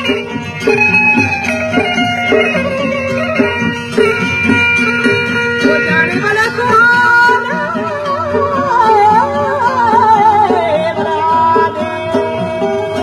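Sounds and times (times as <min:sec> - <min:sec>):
rhythmic accompaniment: 0:00.0 - 0:13.0
stringed instrument melody: 0:00.0 - 0:13.0.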